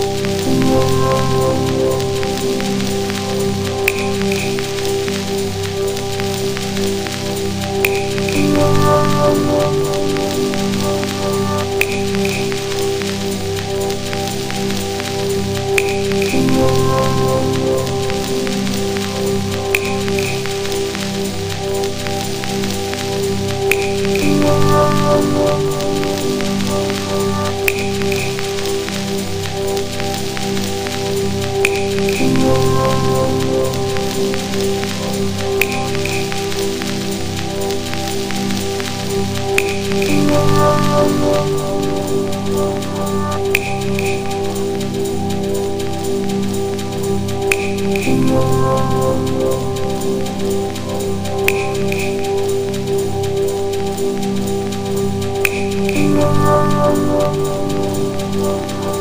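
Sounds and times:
dub techno chords: 0:00.0 - 0:59.0
hissing crackle texture: 0:00.0 - 0:59.0.

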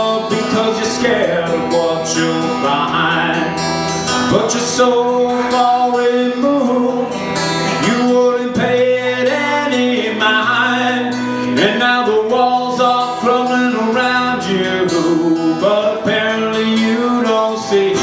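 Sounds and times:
acoustic guitar strumming: 0:00.0 - 0:18.0
man singing: 0:00.0 - 0:18.0.

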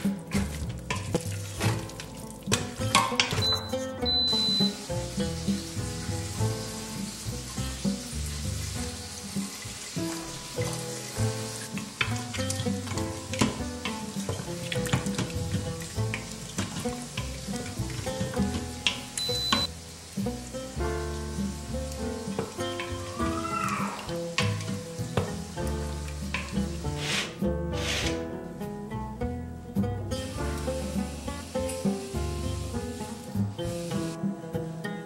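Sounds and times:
chicken sizzling in a pot: 0:00.0 - 0:28.1, 0:30.2 - 0:34.2
background music: 0:00.0 - 0:35.0
wooden spatula scraping a pot: 0:26.3 - 0:28.2.

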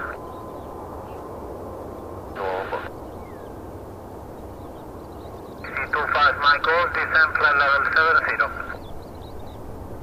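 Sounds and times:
distant jet engines rumbling: 0:00.0 - 0:10.0.

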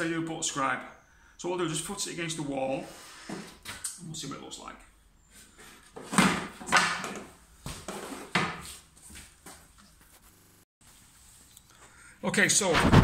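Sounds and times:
wood rubbing and shuffling: 0:05.3 - 0:11.3.

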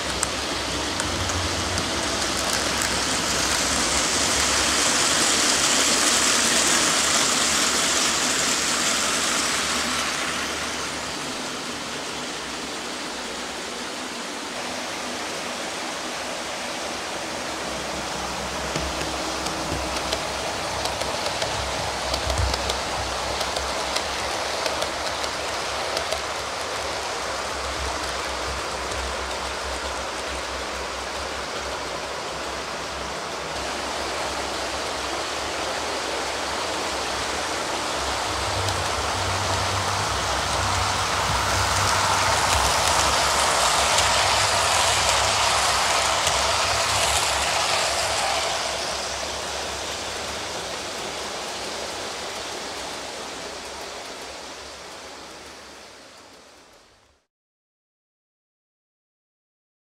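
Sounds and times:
model train wheels on rail: 0:00.0 - 0:57.3.

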